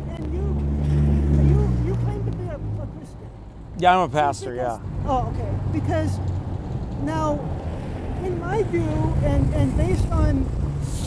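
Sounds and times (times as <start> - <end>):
truck driving past: 0.0 - 2.9.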